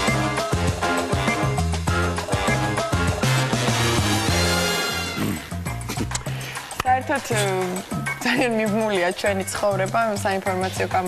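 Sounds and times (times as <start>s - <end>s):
theme jingle music: 0.0s - 5.8s.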